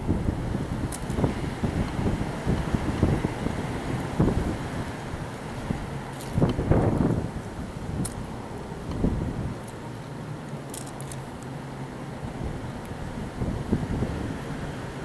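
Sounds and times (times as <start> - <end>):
wind buffeting microphone: 0.0 - 9.9, 12.2 - 15.0.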